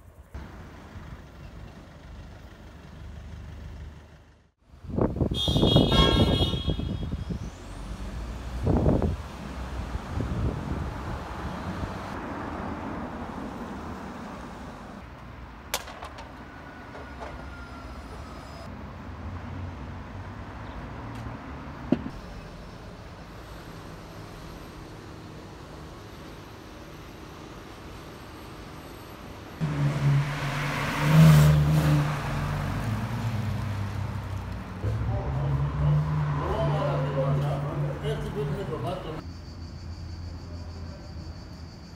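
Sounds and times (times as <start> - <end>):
street traffic: 0.0 - 41.9
car horn honking: 5.3 - 7.2.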